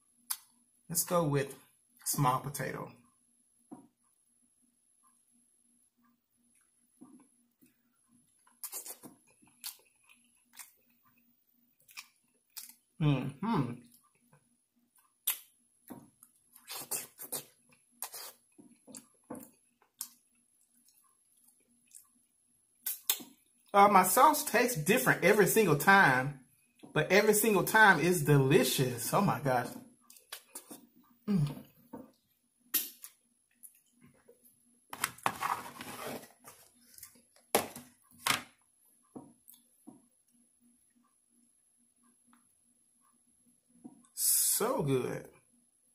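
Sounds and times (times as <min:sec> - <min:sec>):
wet chewing: 0:06.5 - 0:13.0, 0:13.8 - 0:23.7
mouth chewing wet smacks: 0:08.3 - 0:11.0, 0:11.8 - 0:12.8, 0:15.0 - 0:15.6, 0:22.8 - 0:23.7, 0:30.1 - 0:30.9.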